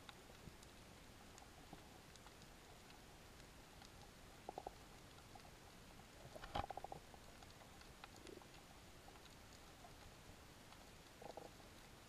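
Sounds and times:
faint underwater ambience: 0.0 - 12.0.

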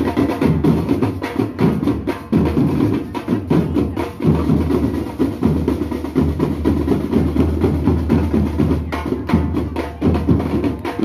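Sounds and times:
marching snare and bass drums: 0.0 - 11.0.

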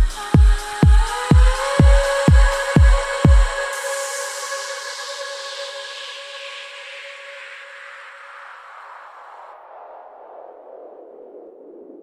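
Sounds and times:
filtered hiss sliding downward: 0.0 - 9.5.

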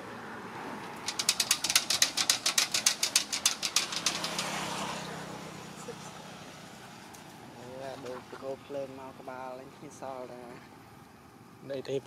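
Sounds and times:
monkey climbing hollow metal pole: 0.8 - 6.2.

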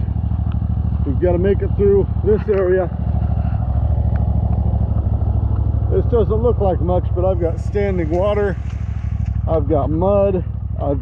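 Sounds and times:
riding mower engine running: 0.0 - 11.0.

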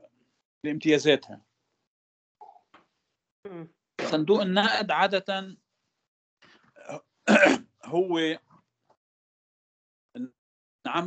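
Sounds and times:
person speaking: 0.7 - 1.4, 3.5 - 5.5, 7.8 - 8.4
person coughing: 6.9 - 7.6.

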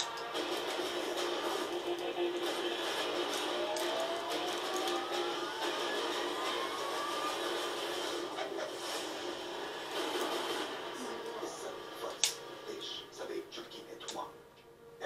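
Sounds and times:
low drone: 0.0 - 13.3
rising tone: 1.6 - 11.8.

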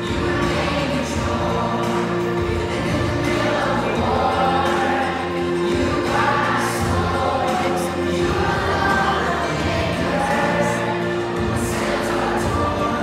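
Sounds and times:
children's choir singing: 0.0 - 13.0
instrumental accompaniment: 0.0 - 13.0.

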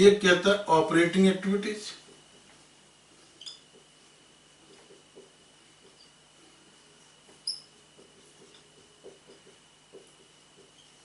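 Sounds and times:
marker squeak: 3.3 - 3.8, 5.9 - 6.2, 7.3 - 7.8, 10.6 - 11.0.

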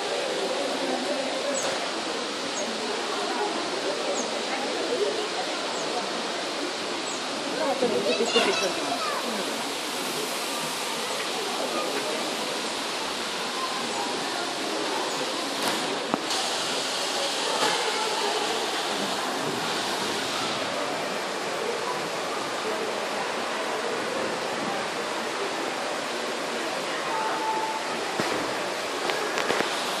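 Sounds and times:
falling water rushing: 0.0 - 30.0
people chattering: 0.0 - 30.0.

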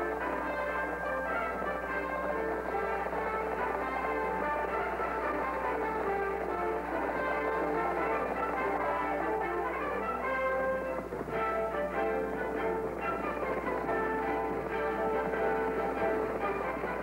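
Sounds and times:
orchestral music with brass and strings: 0.0 - 17.0.

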